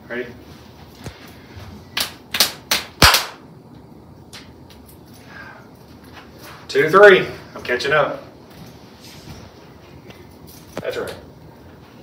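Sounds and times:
hand claps and slaps: 1.9s - 3.4s.

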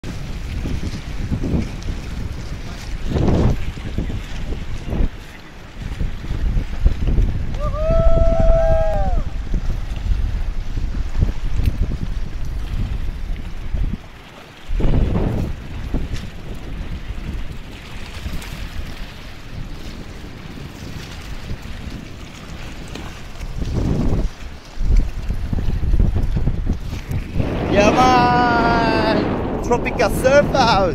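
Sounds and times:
small waves on rocky shore: 0.0s - 30.9s
wind buffeting microphone: 0.0s - 30.9s.

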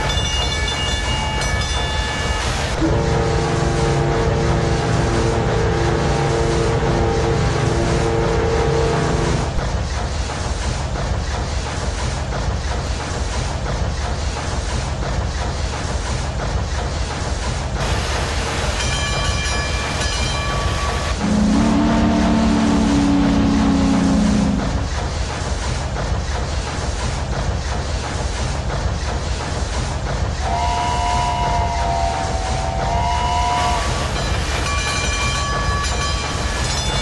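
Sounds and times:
steam train chugging: 0.0s - 37.0s
train whistle blasts: 20.7s - 24.6s, 30.4s - 34.1s.

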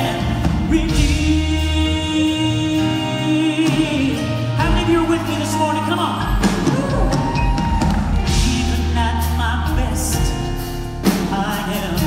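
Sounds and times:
bass: 0.0s - 12.0s
drums: 0.0s - 12.0s
man singing: 0.0s - 12.0s.

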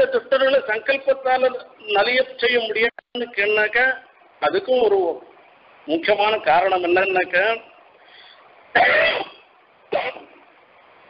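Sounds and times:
man coughing: 8.8s - 10.3s.

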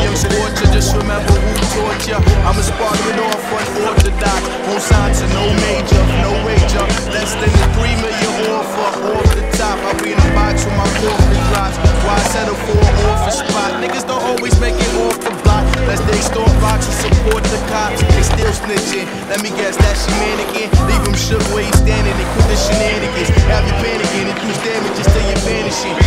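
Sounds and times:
hip-hop track with heavy bass: 0.0s - 26.0s
skateboard wheels rolling: 0.0s - 26.0s
skateboards clacking on concrete: 0.1s - 26.0s.

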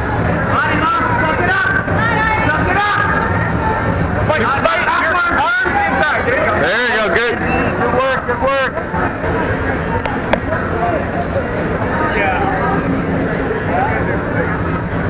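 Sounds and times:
crowd talking and calling out: 0.0s - 15.0s
steady low hum: 0.0s - 15.0s.

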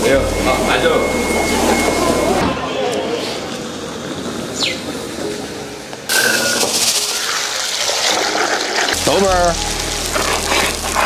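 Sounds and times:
voices: 0.0s - 4.2s
outdoor hiss: 4.0s - 11.0s.

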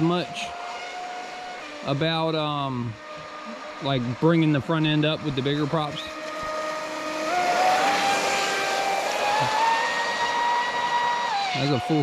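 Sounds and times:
rc boat motor whining: 0.0s - 12.0s.

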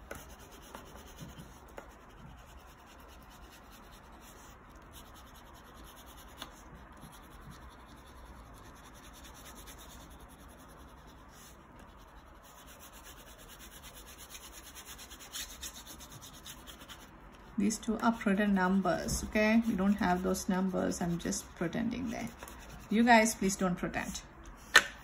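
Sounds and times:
crayon rubbing on paper: 0.0s - 18.5s, 19.4s - 23.1s.

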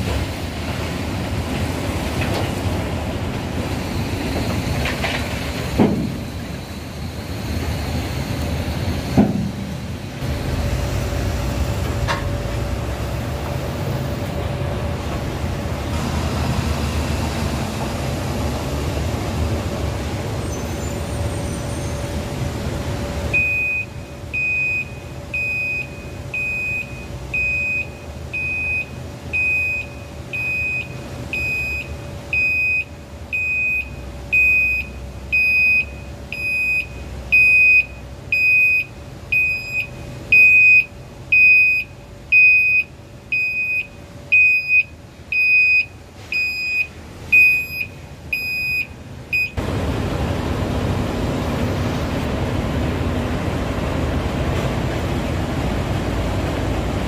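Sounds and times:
diesel engine running: 0.0s - 57.0s
truck reversing alarm beeping: 3.6s - 12.9s, 15.9s - 18.1s, 23.3s - 49.6s.

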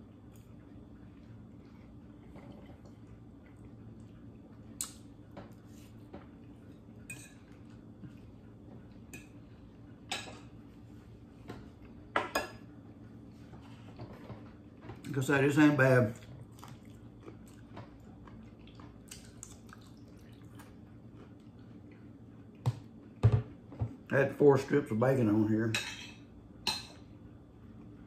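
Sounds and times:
faint low hum: 0.0s - 28.0s.

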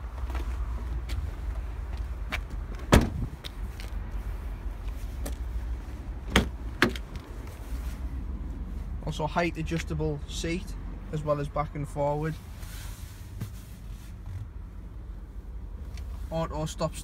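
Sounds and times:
car doors and tailgate knocking: 2.8s - 3.3s, 6.3s - 7.0s.

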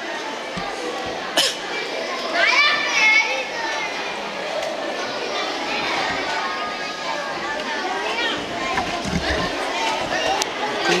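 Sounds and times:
hubbub of large hall: 0.0s - 11.0s.

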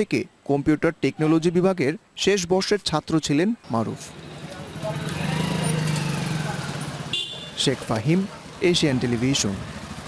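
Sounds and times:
motorcycle engine passing: 4.1s - 10.0s.

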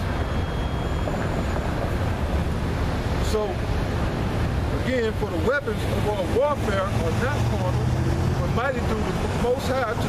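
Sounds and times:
wind buffeting microphone: 0.0s - 4.8s
low rumble of street noise: 0.0s - 10.0s.

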